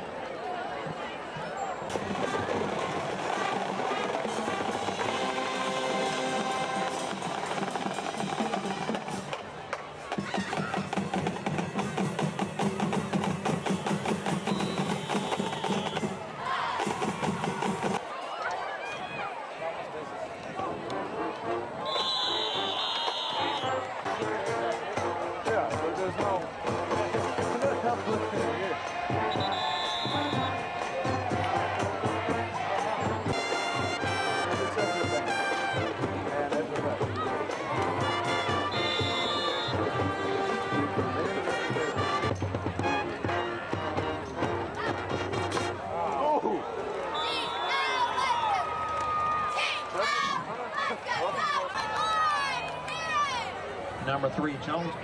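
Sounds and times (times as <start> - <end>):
crowd noise: 0.0 - 55.0
band playing brass music: 1.9 - 9.4, 10.1 - 16.2, 20.7 - 45.9
marching drumline rolling cadence: 1.9 - 16.2, 16.8 - 18.0, 22.0 - 45.8.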